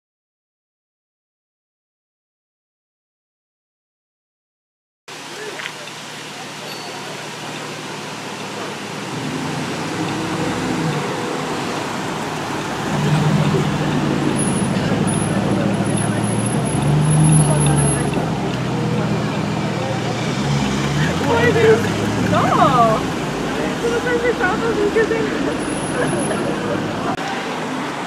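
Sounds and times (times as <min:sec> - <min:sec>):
car engine driving off: 0:05.1 - 0:28.0
street traffic noise: 0:05.1 - 0:28.0.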